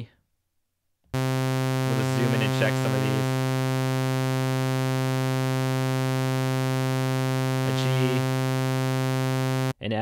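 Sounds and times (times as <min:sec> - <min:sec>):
synth sawtooth tone: 0:01.2 - 0:09.7.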